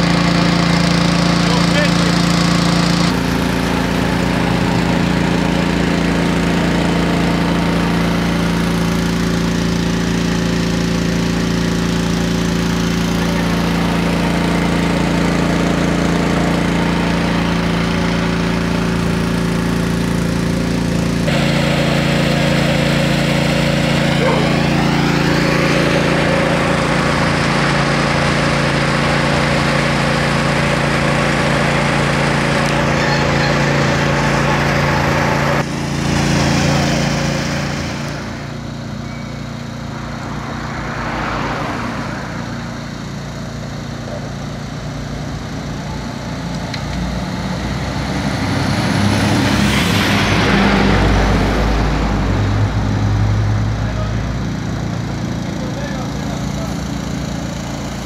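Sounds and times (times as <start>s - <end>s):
engine running steadily: 0.0s - 58.0s.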